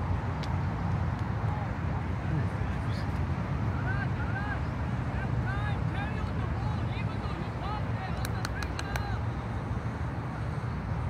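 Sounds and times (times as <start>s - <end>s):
sharp clicks: 8.2s - 9.1s.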